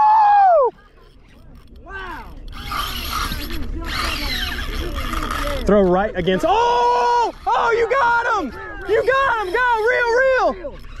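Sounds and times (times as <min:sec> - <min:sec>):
fishing reel gears whirring: 0:00.0 - 0:11.0.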